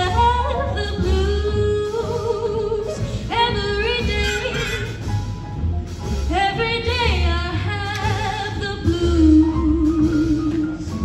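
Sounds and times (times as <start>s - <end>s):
woman singing blues: 0.0s - 5.0s, 6.3s - 10.9s
jazz big band: 0.0s - 11.0s
walking bass: 0.0s - 11.0s.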